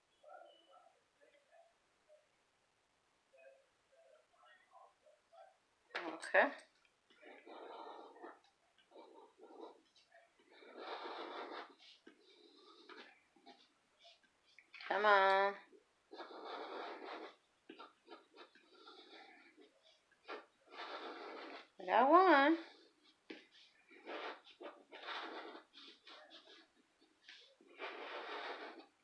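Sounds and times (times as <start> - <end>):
scratching lottery ticket: 7.2 - 29.0.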